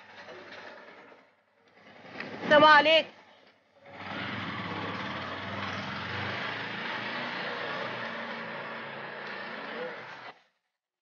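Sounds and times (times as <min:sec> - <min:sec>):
auto-rickshaw engine running: 0:03.7 - 0:10.5.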